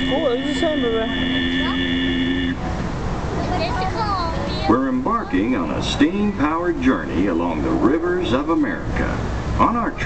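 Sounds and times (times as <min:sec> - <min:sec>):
steam whistle chord: 0:00.0 - 0:02.6
child's voice: 0:01.6 - 0:01.9, 0:03.3 - 0:04.8.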